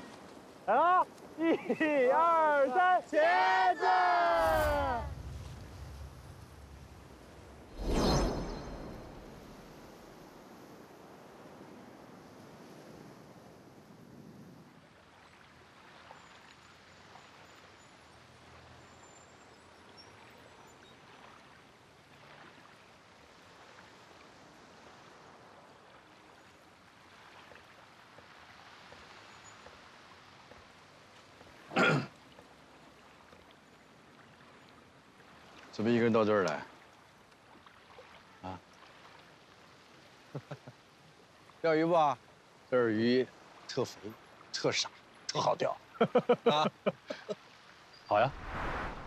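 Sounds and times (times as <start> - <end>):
water lapping against boat: 20.0 - 41.6.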